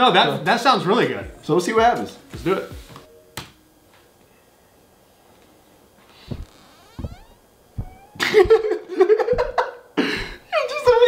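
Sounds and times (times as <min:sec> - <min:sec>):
short thump: 0:06.3 - 0:08.7, 0:09.3 - 0:09.6.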